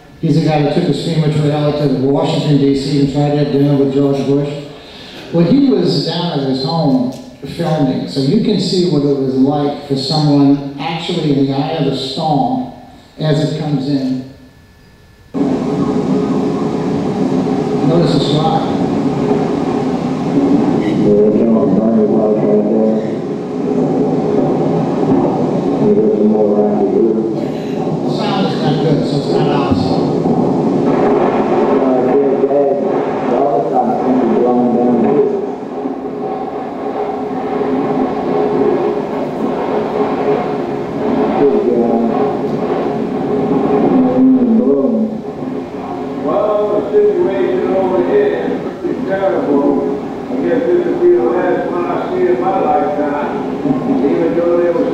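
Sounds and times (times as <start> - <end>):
people talking: 0.0 - 14.3, 17.7 - 19.6, 20.3 - 23.4, 24.0 - 35.6, 41.1 - 42.8, 43.6 - 45.3, 45.9 - 54.9
rushing storm wind: 15.4 - 54.9.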